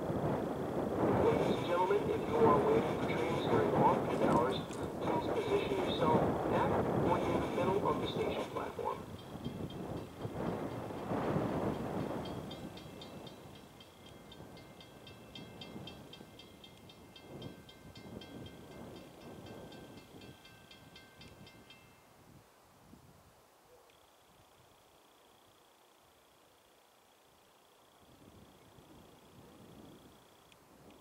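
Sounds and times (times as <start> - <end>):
diesel train running: 0.0 - 21.8
railroad crossing bell ringing: 1.3 - 22.2.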